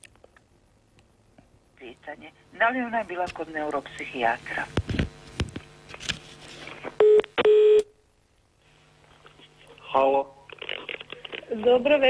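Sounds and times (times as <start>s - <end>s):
telephone line beeps: 7.0s - 7.9s.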